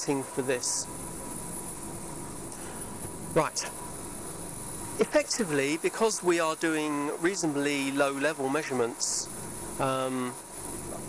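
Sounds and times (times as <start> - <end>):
equipment and ventilation hum: 0.0 - 11.0.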